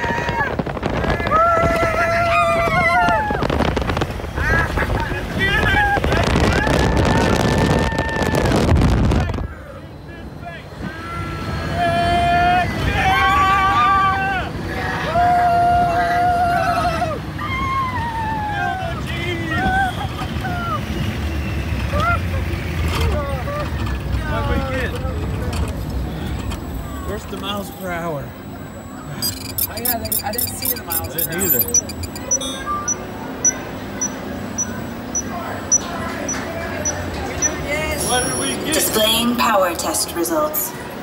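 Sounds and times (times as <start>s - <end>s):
wind rushing over microphone: 0.0s - 9.6s
low rumble of ride vehicle: 0.0s - 41.0s
riders calling and crying out: 9.4s - 41.0s.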